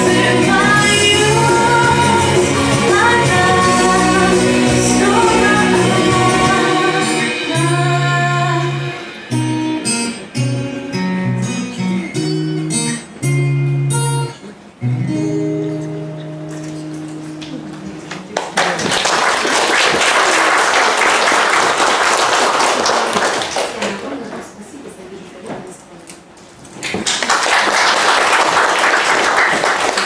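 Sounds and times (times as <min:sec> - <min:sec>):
plucked acoustic guitar: 0:00.0 - 0:18.4
audience applause: 0:18.1 - 0:24.1, 0:26.8 - 0:30.0.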